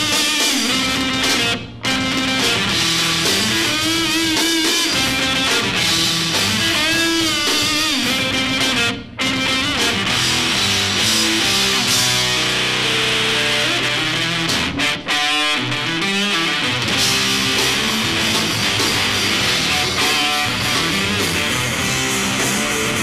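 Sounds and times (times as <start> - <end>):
distorted electric guitar: 0.0 - 23.0
drum kit: 0.0 - 23.0
electric bass: 0.0 - 23.0.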